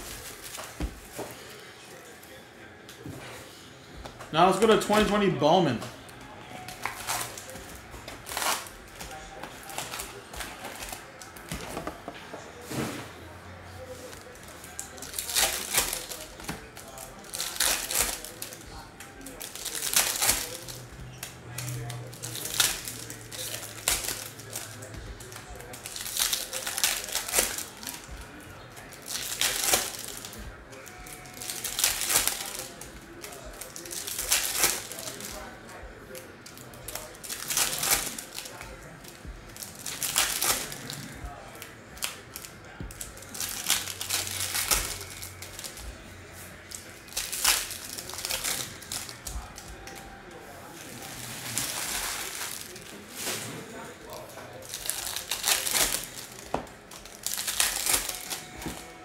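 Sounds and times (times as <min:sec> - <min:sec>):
foil wrappers crinkling and tearing: 0:00.0 - 0:02.4, 0:04.4 - 0:11.7, 0:12.6 - 0:59.0.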